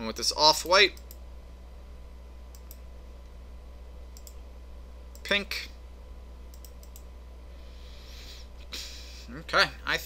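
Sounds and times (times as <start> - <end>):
low electrical hum: 0.0 - 10.0
faint computer mouse clicks: 2.5 - 2.8, 4.2 - 4.4, 6.5 - 7.1.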